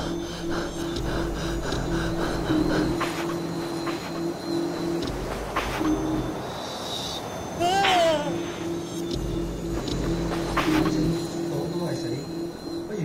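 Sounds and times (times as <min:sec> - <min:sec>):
background music with pulsing beat: 0:00.0 - 0:06.4, 0:08.1 - 0:13.0.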